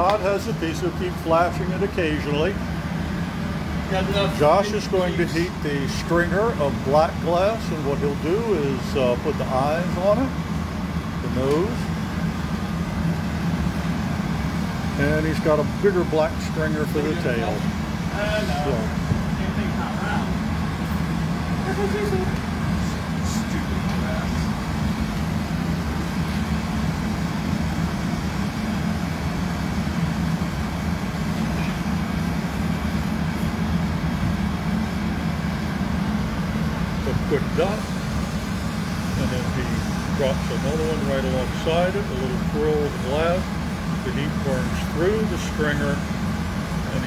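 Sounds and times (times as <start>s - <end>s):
gas burners roaring: 0.0s - 47.0s.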